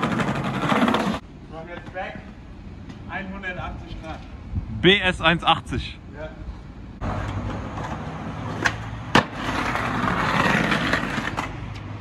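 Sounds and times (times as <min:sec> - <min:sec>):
skateboard wheels rolling on stone: 0:00.0 - 0:01.2, 0:07.0 - 0:12.0
skateboard landing slap: 0:08.6 - 0:09.5.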